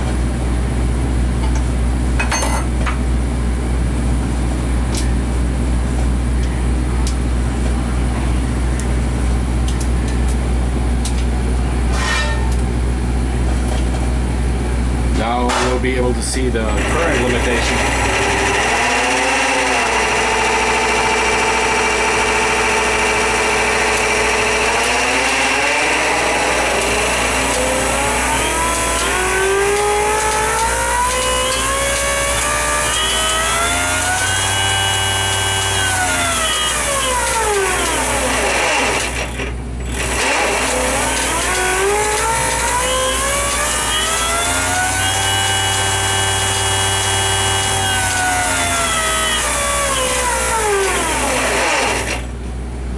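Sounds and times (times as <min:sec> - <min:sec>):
magneto test stand whine: 0:14.4 - 0:52.9.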